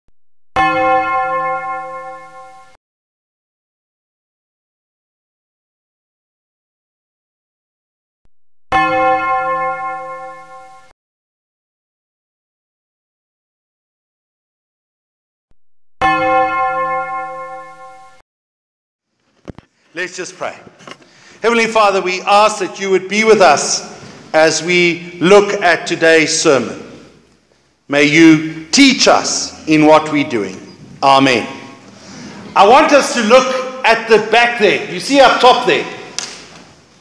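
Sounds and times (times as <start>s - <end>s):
bell ringing: 0.6s - 2.8s, 8.7s - 10.9s, 16.0s - 18.2s.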